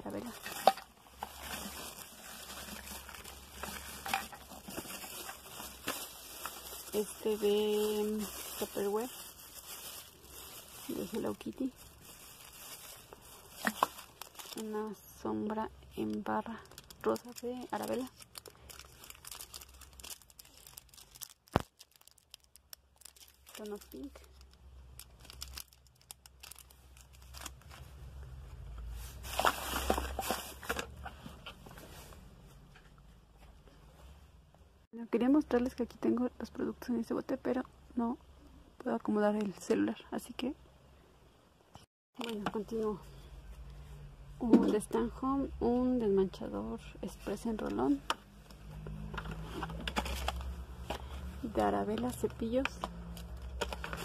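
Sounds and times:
plastic bags crinkling: 0.0s - 27.9s, 29.0s - 31.0s, 47.3s - 54.0s.

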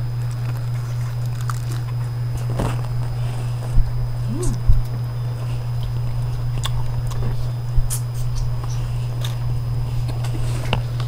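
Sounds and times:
low electrical hum: 0.0s - 11.0s
people eating at a table: 0.0s - 11.0s.

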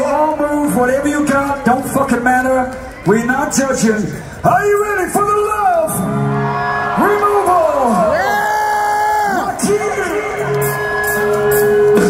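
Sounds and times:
man shouting through concert pa: 6.8s - 11.0s.

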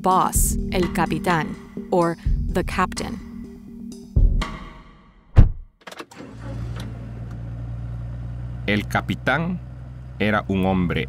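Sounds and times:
thud: 5.4s - 5.7s
car door slamming: 5.4s - 6.2s
car engine humming: 6.1s - 11.0s.

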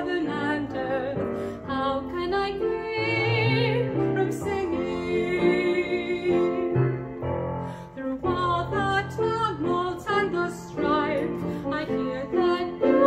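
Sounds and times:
woman singing a hymn: 0.0s - 6.8s, 8.0s - 13.0s
piano accompaniment: 0.0s - 13.0s.

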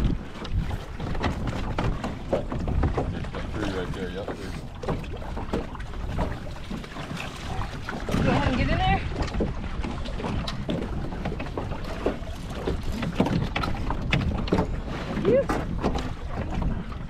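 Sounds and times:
water splashing and sloshing: 0.0s - 17.0s
wind buffeting microphone: 0.0s - 17.0s
knocks and clatter: 4.8s - 14.8s.

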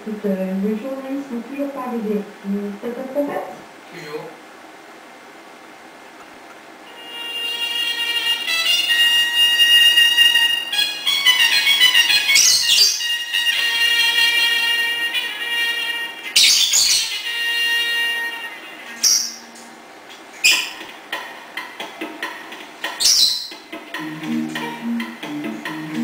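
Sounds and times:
trumpet playing: 6.9s - 16.4s, 17.0s - 19.0s, 24.0s - 26.0s.

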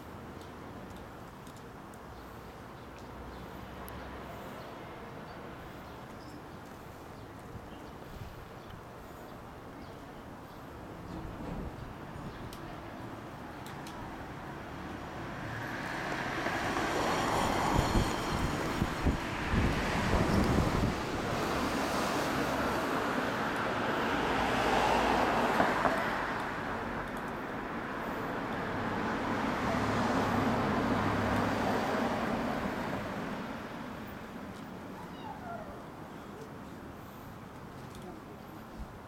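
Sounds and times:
road traffic passing: 0.0s - 39.0s.

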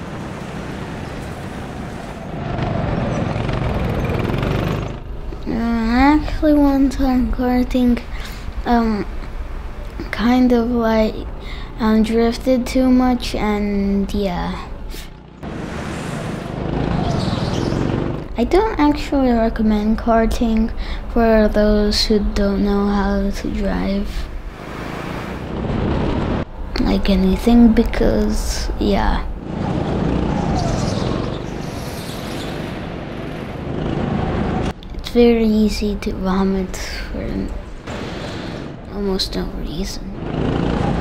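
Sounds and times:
go-kart driving at speed: 0.0s - 5.6s, 14.5s - 19.1s, 24.4s - 26.8s, 27.4s - 34.8s, 39.9s - 41.0s
go-kart engine running: 0.0s - 5.9s, 14.9s - 18.6s, 40.0s - 41.0s
road and wind rumble: 0.0s - 41.0s.

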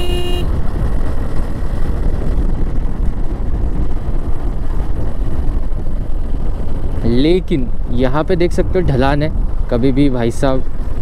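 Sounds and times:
motorcycle engine and tyre noise: 0.0s - 11.0s
wind rushing on microphone: 0.0s - 11.0s.

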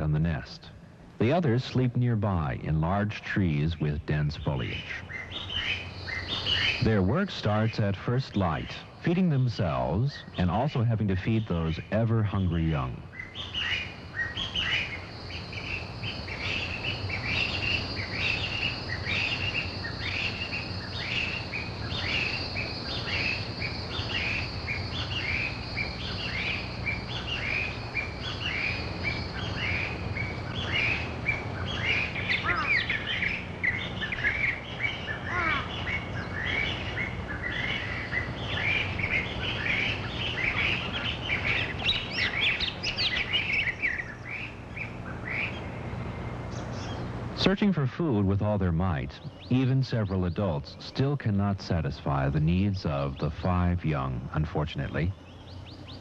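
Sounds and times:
magpies calling: 2.3s - 56.0s.

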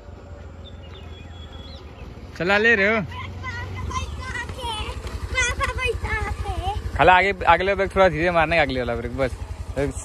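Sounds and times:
scooter engine running: 0.0s - 10.0s
voices talking: 0.1s - 10.0s.

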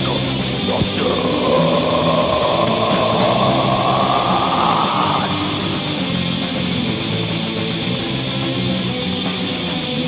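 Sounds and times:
harsh noisy sustained sound: 0.0s - 7.9s
black metal band: 0.0s - 10.0s.

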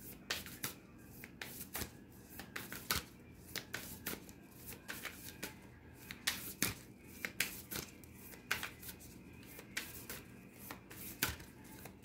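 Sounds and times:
cards being shuffled: 0.2s - 12.0s.

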